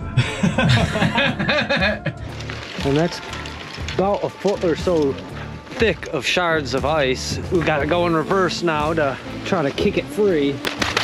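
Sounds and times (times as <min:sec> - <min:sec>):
men laughing: 0:00.0 - 0:02.4
background music: 0:00.0 - 0:11.0
man speaking: 0:04.0 - 0:10.6.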